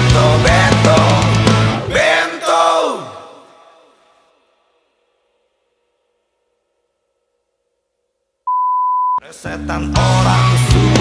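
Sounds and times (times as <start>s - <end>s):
loud rock music: 0.0s - 2.1s, 9.3s - 11.0s
electronic beep: 8.5s - 9.2s.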